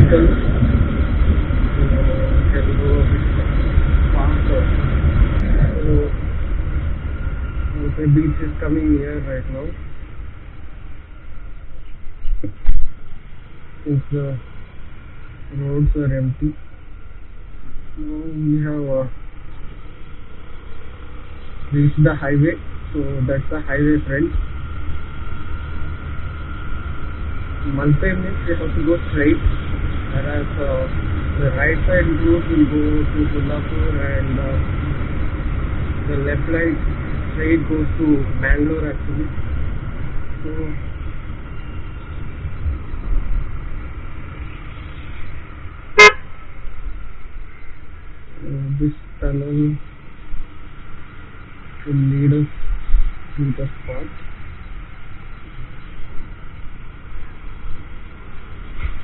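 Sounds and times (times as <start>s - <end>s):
road noise: 0.0s - 59.0s
scooter engine rumble: 0.0s - 59.0s
short loud horn toot: 46.0s - 46.3s.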